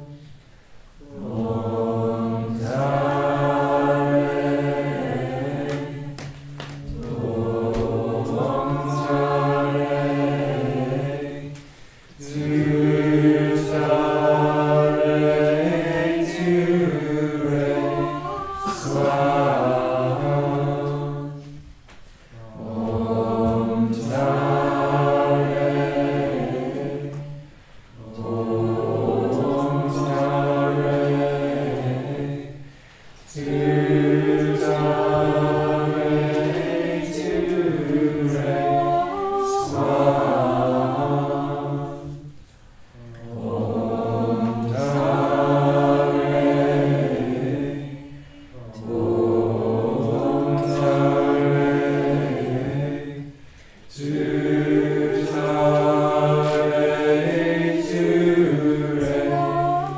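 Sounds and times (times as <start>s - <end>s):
group chanting in unison: 0.0s - 59.9s.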